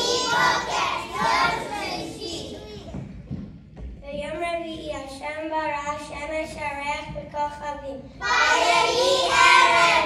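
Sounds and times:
children singing together: 0:00.0 - 0:02.8, 0:08.2 - 0:10.0.

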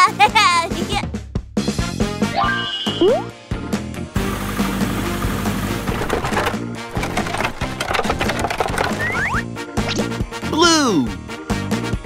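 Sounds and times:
background music: 0:00.0 - 0:12.0
plastic eggs clattering: 0:05.6 - 0:09.4.

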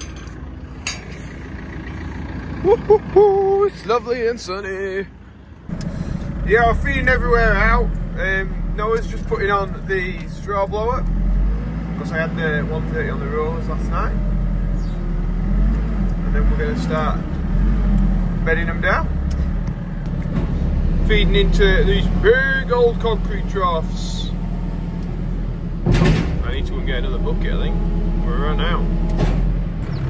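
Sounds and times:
metal gate latch clank: 0:00.0 - 0:01.5
engine idling: 0:00.0 - 0:11.0
diesel engine running: 0:00.0 - 0:30.0.

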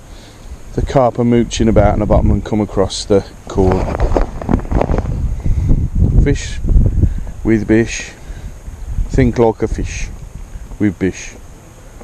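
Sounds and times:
wind buffeting microphone: 0:00.6 - 0:12.0.

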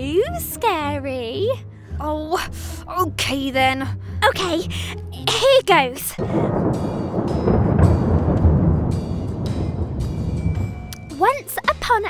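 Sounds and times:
thunder rumbling: 0:05.6 - 0:11.8.

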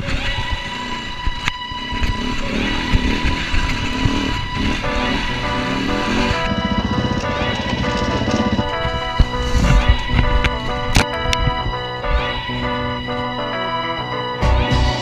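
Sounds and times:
music playing: 0:00.3 - 0:15.0
motorcycle engine running: 0:01.2 - 0:15.0.

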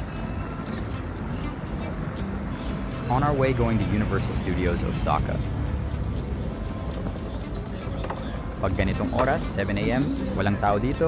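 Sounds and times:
faint indistinct voices: 0:00.0 - 0:11.0
low street rumble: 0:00.0 - 0:11.0.

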